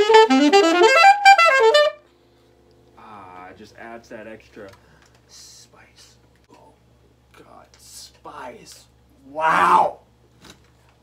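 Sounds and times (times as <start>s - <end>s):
saxophone playing fast run: 0.0s - 2.0s.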